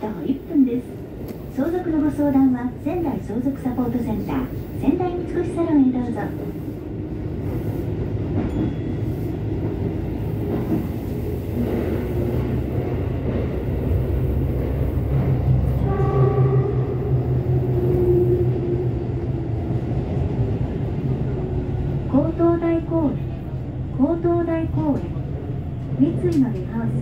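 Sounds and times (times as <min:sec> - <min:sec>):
subway train rumbling: 0:00.0 - 0:27.0.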